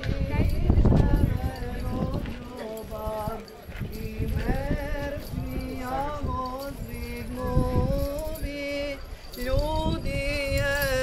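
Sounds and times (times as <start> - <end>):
voices chanting a hymn: 0.0 - 11.0.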